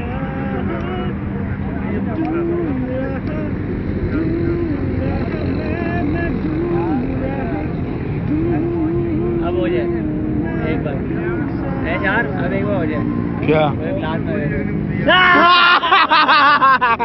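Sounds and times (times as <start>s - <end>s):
steady low rumble: 0.0s - 12.2s
people humming pitched notes: 0.0s - 13.8s
people talking: 0.0s - 17.0s.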